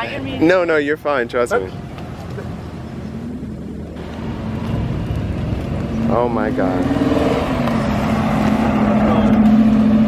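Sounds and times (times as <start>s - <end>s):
car engine running low: 1.5s - 10.0s.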